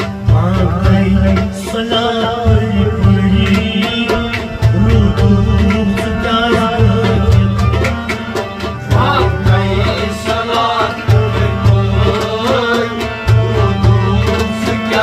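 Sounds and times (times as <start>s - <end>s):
harmonium chords: 0.0s - 15.0s
percussion beat: 0.0s - 15.0s
man singing: 0.3s - 15.0s.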